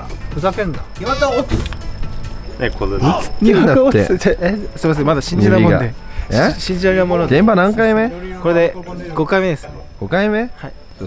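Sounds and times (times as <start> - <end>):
crickets trilling: 0.0 - 11.0
men talking: 0.0 - 11.0.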